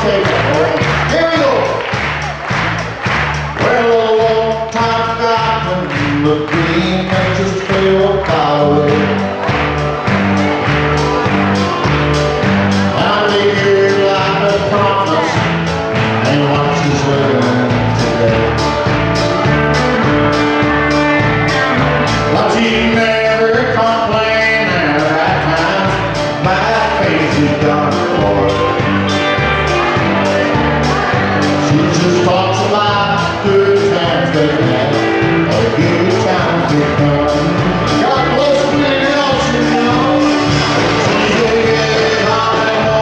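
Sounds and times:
person singing: 0.0 - 2.4, 3.4 - 43.0
bass: 0.0 - 43.0
country band playing: 0.0 - 43.0
drums keeping a steady beat: 0.0 - 43.0
guitars: 0.0 - 43.0.

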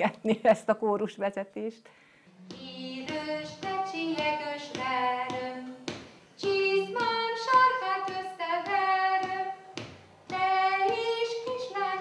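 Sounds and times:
woman singing unaccompanied: 2.3 - 12.0.

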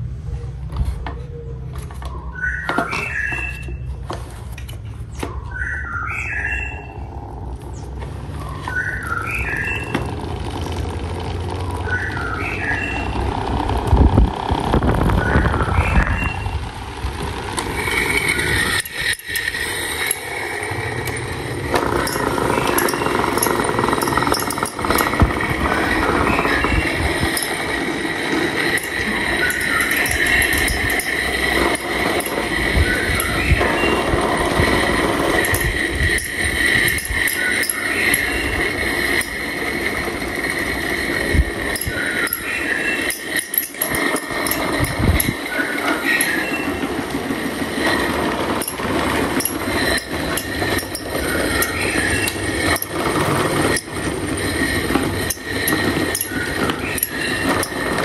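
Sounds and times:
desk fans whirring and whining: 0.0 - 58.0.

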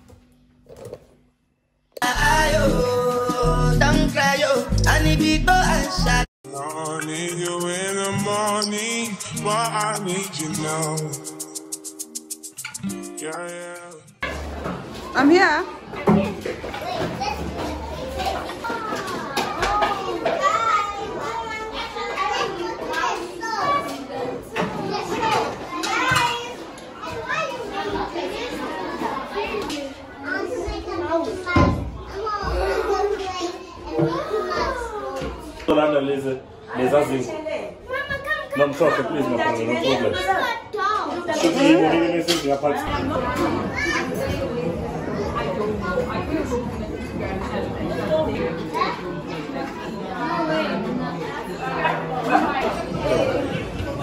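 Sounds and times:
children chattering and calling: 2.0 - 54.0.

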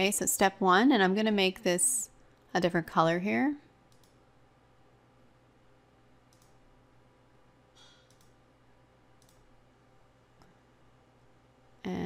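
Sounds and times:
faint computer mouse clicks: 3.9 - 4.2, 6.3 - 6.6, 7.8 - 8.4, 9.2 - 9.4.

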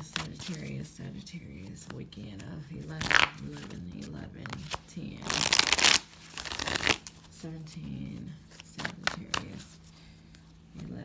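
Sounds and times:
cards being shuffled by hand: 1.5 - 10.5.

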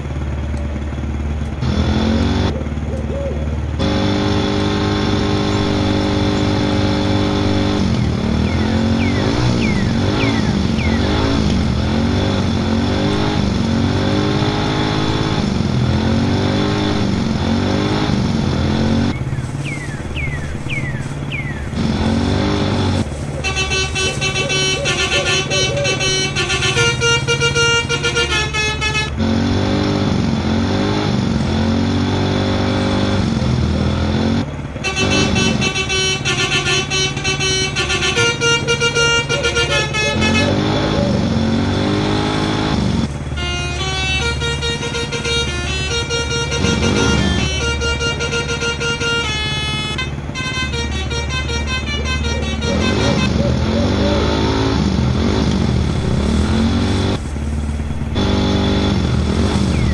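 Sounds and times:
multi-tone musical horn: 22.1 - 29.2, 34.8 - 42.7, 43.3 - 53.5.

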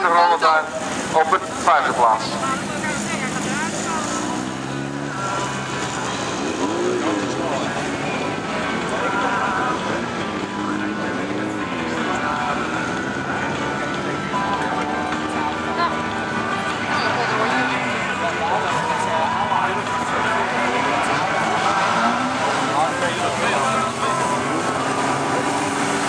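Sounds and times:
race car engines revving: 0.0 - 26.0.

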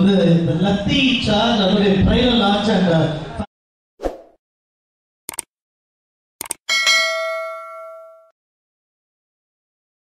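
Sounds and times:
double mouse click: 5.3 - 5.5, 6.4 - 6.6
notification bell ding: 6.7 - 8.4.

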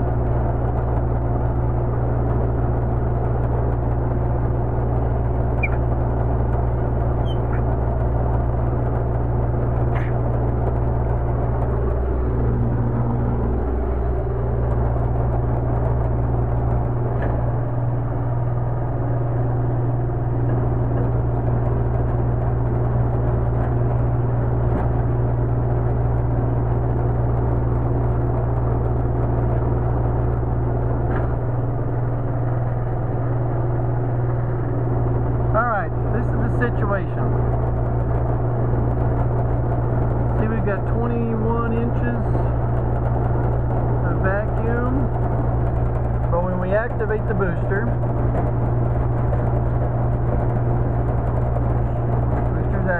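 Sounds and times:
electric vacuum pump humming: 0.0 - 40.8, 41.8 - 52.9.

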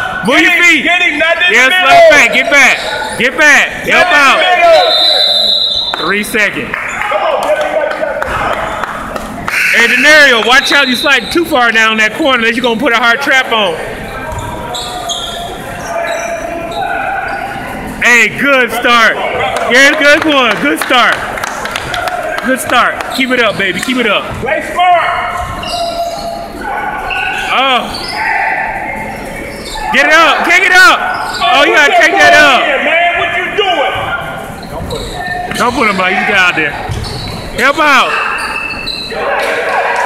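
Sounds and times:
people talking and calling out: 0.0 - 40.0
sneakers squeaking on court: 14.0 - 18.0, 25.1 - 28.2, 29.0 - 29.9, 34.0 - 39.2.

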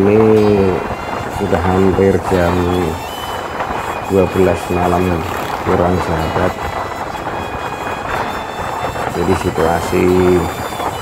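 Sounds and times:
motorcycle road noise: 0.0 - 11.0
wind rumbling on microphone: 0.0 - 11.0.

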